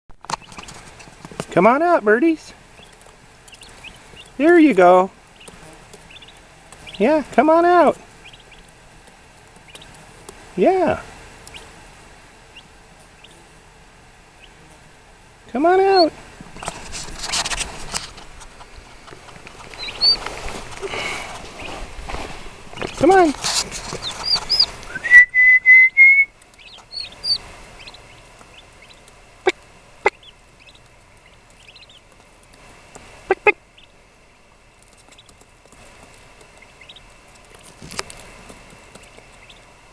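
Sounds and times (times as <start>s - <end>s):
turkey poults peeping: 0.3s - 10.4s, 11.4s - 13.5s, 14.3s - 14.9s, 18.5s - 21.8s, 22.7s - 25.0s, 26.4s - 34.0s, 34.8s - 39.8s
whistled notes: 24.9s - 26.3s.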